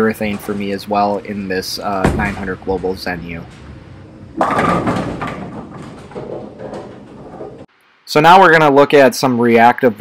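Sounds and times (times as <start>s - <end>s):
bowling alley rumble: 0.0s - 7.7s
bowling pins clattering: 0.0s - 7.7s
bowling ball crashing into pins: 0.2s - 7.7s
scattered knocks: 2.0s - 7.7s.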